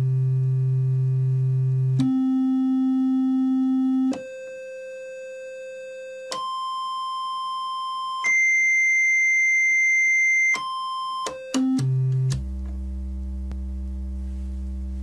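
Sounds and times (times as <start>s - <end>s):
buzzy synth tone: 11.7s - 15.0s.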